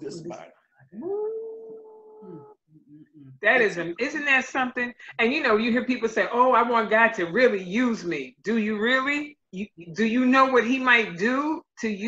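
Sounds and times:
long held vocal note: 0:00.0 - 0:03.4.

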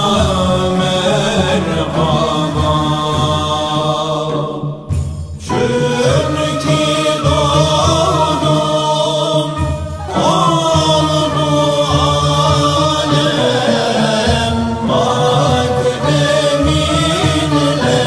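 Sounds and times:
men chanting: 0:00.0 - 0:18.0.

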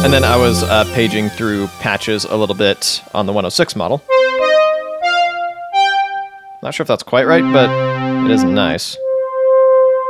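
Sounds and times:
synthesizer held notes: 0:00.0 - 0:06.7, 0:07.3 - 0:10.0.

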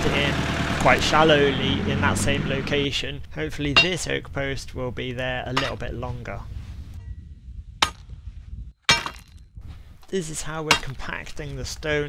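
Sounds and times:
post rammer clanging on stones: 0:03.6 - 0:04.3, 0:05.5 - 0:06.2, 0:07.8 - 0:08.2, 0:08.8 - 0:12.0.

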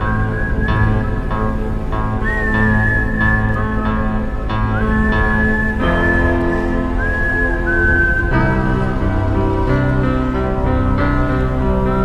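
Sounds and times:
ambient keyboard chords: 0:00.0 - 0:12.0.

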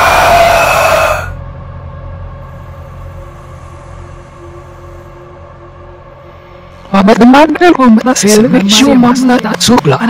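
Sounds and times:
eerie ambient drone: 0:00.0 - 0:10.0.

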